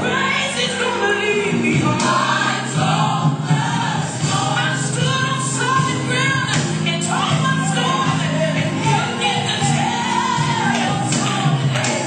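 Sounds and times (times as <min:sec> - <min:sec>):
choir singing: 0:00.0 - 0:12.0
sustained low bass notes: 0:00.0 - 0:12.0.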